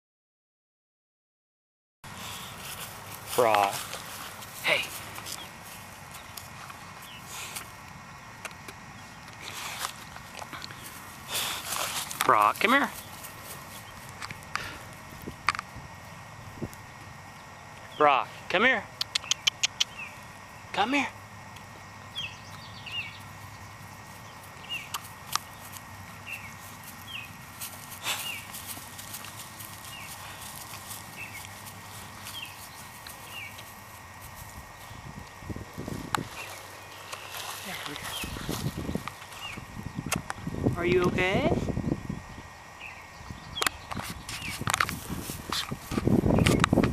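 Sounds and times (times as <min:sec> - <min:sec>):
rustling in tall grass: 0:02.1 - 0:08.1, 0:09.0 - 0:16.7, 0:22.4 - 0:39.9, 0:44.0 - 0:46.9.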